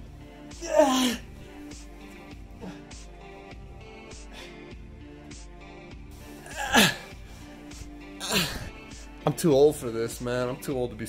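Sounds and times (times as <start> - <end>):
man groaning or sneezing: 0.5 - 1.3, 6.3 - 7.2, 8.2 - 8.8.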